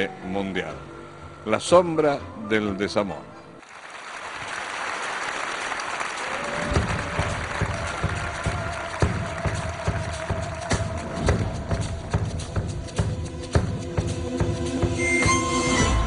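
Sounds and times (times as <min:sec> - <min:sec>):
audience applause: 0:03.6 - 0:12.0.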